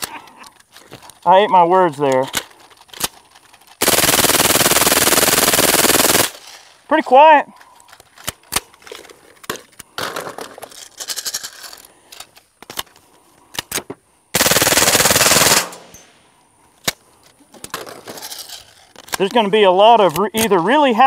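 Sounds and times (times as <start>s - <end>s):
suppressed automatic gunfire burst: 3.8s - 6.4s, 14.3s - 15.9s.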